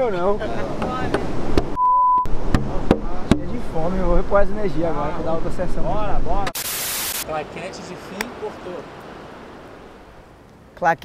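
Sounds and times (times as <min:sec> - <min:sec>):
voices talking and laughing: 0:00.0 - 0:01.3
censor bleep: 0:01.8 - 0:02.3.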